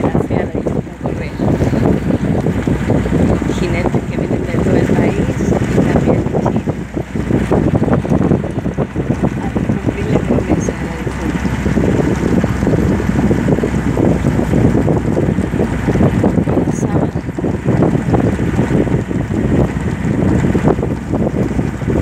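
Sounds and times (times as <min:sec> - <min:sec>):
vehicle low rumble: 0:00.0 - 0:22.0
wind buffeting microphone: 0:00.0 - 0:22.0.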